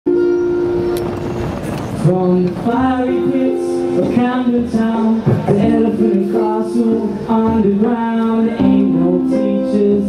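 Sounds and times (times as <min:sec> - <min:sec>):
acoustic band holding chord: 0:00.1 - 0:10.0.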